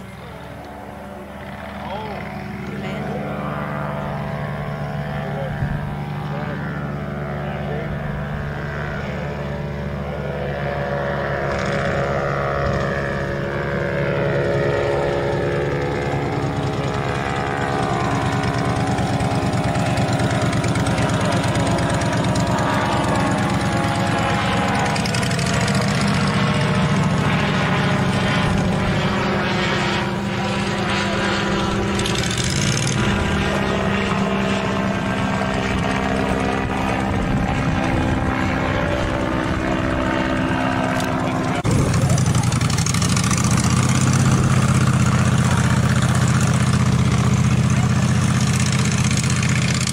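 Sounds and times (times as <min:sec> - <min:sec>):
ultralight plane engine and propeller: 0:00.0 - 0:49.9.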